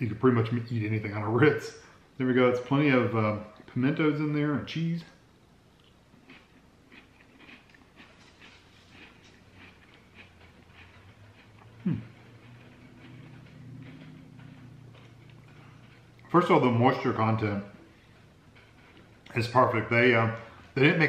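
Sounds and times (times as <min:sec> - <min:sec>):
cracker chewing crunches: 0:05.7 - 0:21.0
person humming: 0:11.8 - 0:12.1
person saying hmm: 0:11.8 - 0:12.2.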